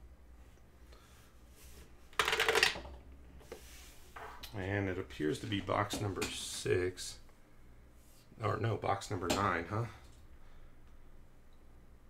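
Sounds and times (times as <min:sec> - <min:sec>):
plastic die clattering down tower: 0:02.2 - 0:02.9.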